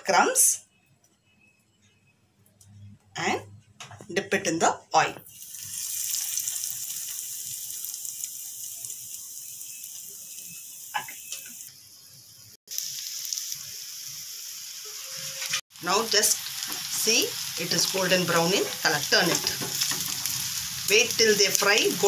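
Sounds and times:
cutlets sizzling in hot oil: 5.2 - 22.0.

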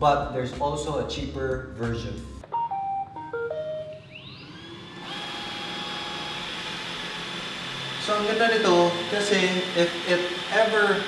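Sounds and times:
robot vacuum beeping tune: 2.4 - 5.4
robot vacuum motors whirring: 4.2 - 11.0.

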